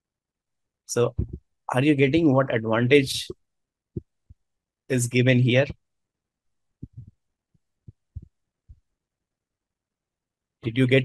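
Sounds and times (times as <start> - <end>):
soft low thumps: 1.1 - 1.5, 6.8 - 7.2, 7.8 - 8.9.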